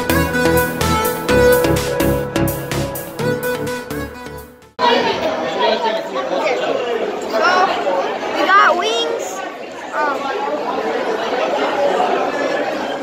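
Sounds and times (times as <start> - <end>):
diners talking babble: 4.8 - 13.0.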